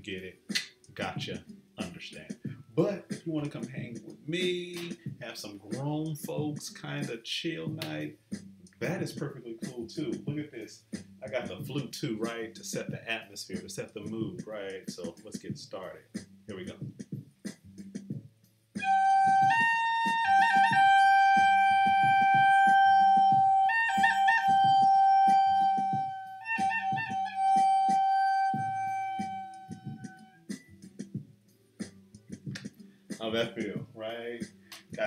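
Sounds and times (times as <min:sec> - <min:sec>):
wooden flute playing slow melody: 0:18.8 - 0:30.4.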